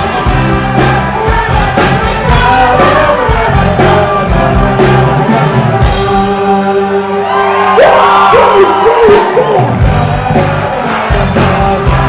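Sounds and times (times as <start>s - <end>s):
crowd singing and whooping: 0.0s - 12.0s
live rock band playing: 0.0s - 12.0s.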